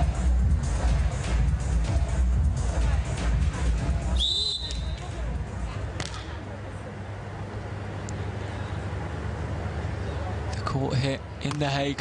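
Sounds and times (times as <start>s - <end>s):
stadium music: 0.0s - 6.5s
referee's whistle: 4.2s - 5.0s.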